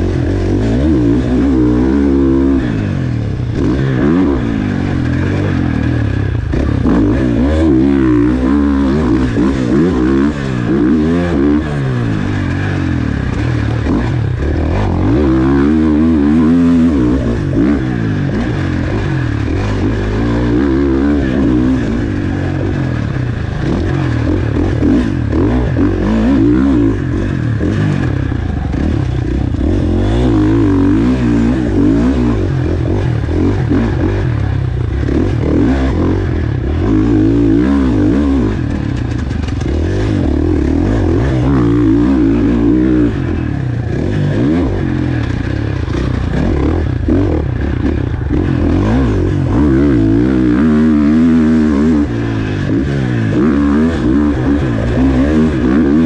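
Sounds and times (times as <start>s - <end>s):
motocross bike engine revving: 0.0s - 56.0s.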